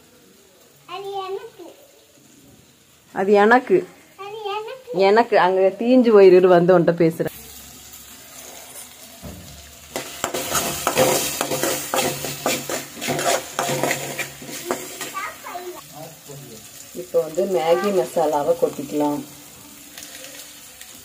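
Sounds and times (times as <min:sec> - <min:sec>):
vegetables sizzling in oil: 0:00.0 - 0:21.0
ladle scraping and clinking on pan: 0:09.9 - 0:15.2.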